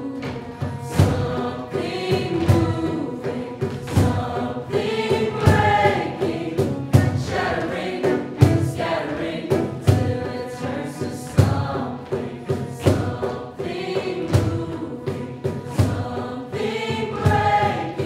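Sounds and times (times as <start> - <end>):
choir singing: 0.0 - 18.0.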